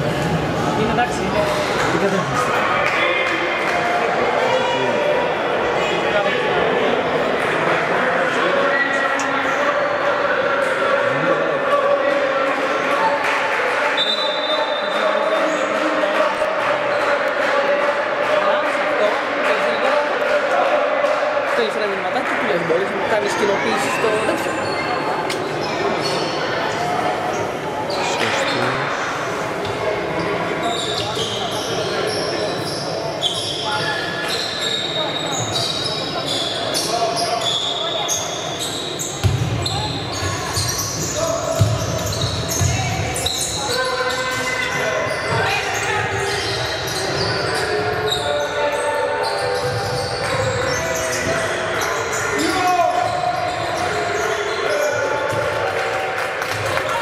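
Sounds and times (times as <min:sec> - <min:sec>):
sneakers squeaking: 0:23.3 - 0:28.9, 0:29.6 - 0:55.6.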